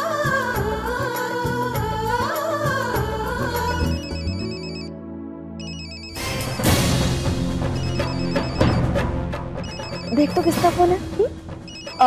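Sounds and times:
background music: 0.0 - 12.0
telephone ringing electronic trill: 3.6 - 4.9, 5.6 - 7.1, 7.7 - 9.0, 9.6 - 11.0, 11.7 - 12.0.

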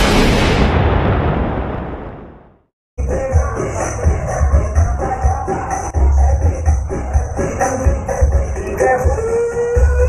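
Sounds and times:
booming sound effect: 0.0 - 2.7.

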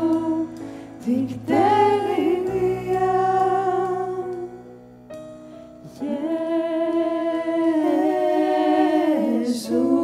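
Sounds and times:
soft band accompaniment: 0.0 - 10.0.

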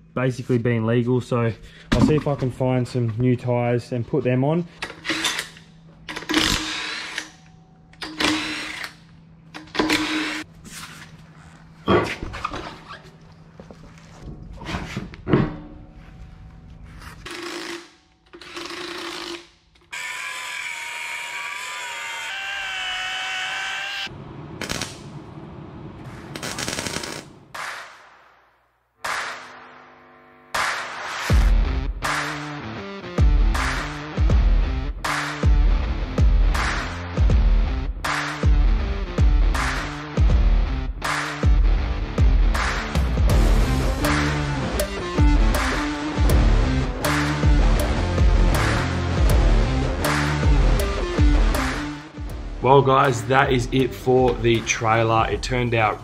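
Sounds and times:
cordless impact wrench bursts: 6.1 - 7.3, 8.0 - 9.0.

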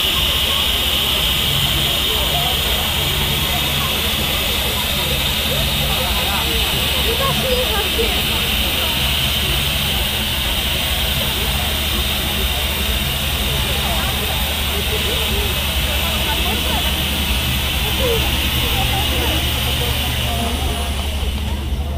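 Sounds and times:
faint voices: 0.0 - 21.9
ride machinery hum and hiss: 0.0 - 21.9.

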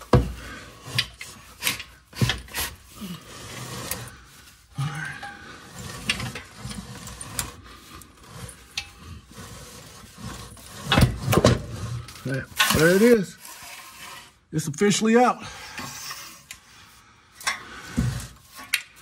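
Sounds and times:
metal scraping on wood: 0.0 - 14.7.

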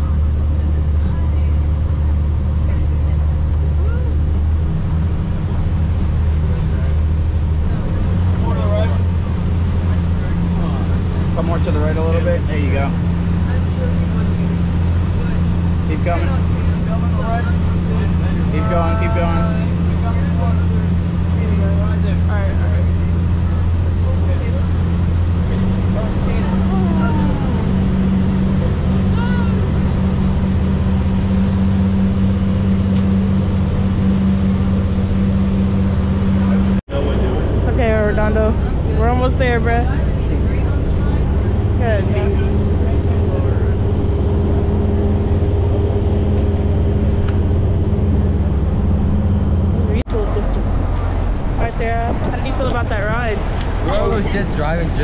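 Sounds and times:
faint voices: 0.0 - 35.2, 36.0 - 55.0
boat engines droning: 0.0 - 55.0.

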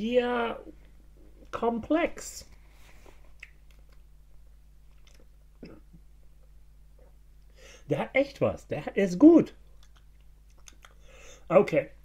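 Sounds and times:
low steady hum: 0.0 - 12.0
wet mouth and lip clicks: 3.4 - 4.1, 4.9 - 5.3, 9.7 - 11.0.

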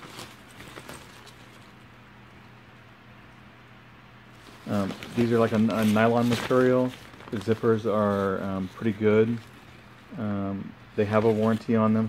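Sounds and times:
nylon packing cubes rustling: 0.0 - 1.9, 4.3 - 9.8, 10.9 - 12.0
low steady hum: 0.0 - 12.0.

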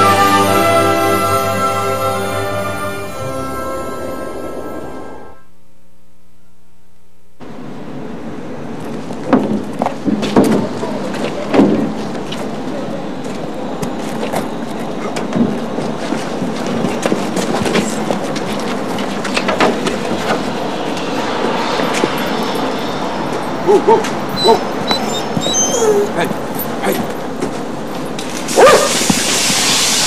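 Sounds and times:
steady rushing noise: 15.8 - 24.3.

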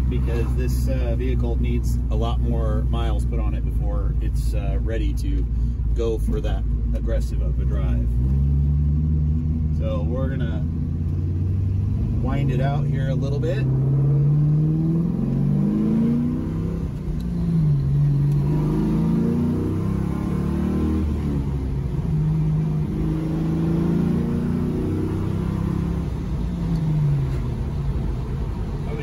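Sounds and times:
car engine revving: 0.0 - 29.0.

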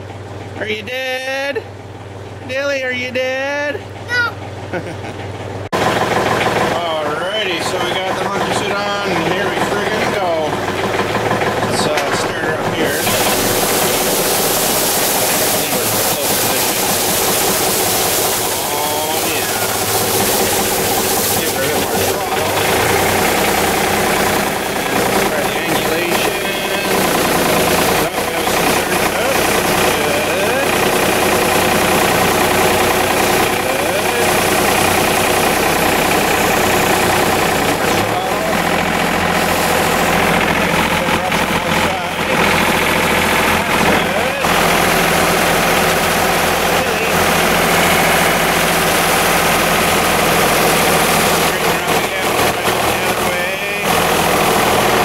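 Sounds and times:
tractor diesel engine running: 0.0 - 55.0
broom brushing snow: 12.9 - 23.0.

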